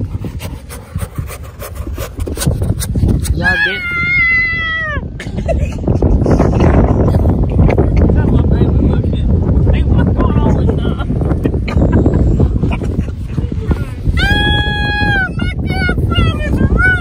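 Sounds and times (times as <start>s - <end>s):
hand scraping in sand: 0.0s - 3.8s
wind rumbling on microphone: 0.0s - 17.0s
long high-pitched cry: 3.4s - 5.1s.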